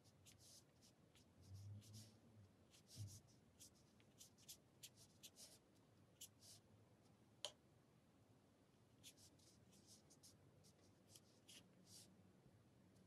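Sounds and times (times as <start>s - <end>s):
brush swishing on paper: 2.7s - 5.6s, 9.0s - 12.1s.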